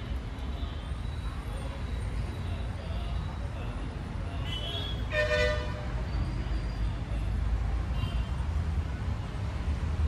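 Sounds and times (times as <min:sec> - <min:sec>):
background traffic rumble: 0:00.0 - 0:10.0
vehicle horn toot: 0:04.5 - 0:05.8.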